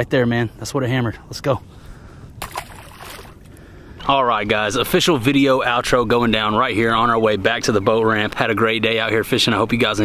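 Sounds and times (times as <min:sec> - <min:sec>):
water lapping against boat: 0:02.4 - 0:03.5.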